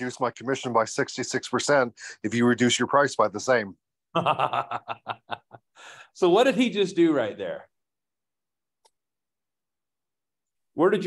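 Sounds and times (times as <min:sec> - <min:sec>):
person laughing: 0:04.2 - 0:05.7
breath in: 0:05.7 - 0:06.2.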